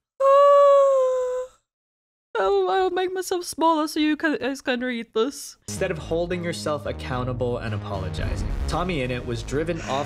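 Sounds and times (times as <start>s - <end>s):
woman whining high-pitched: 0.2s - 1.6s.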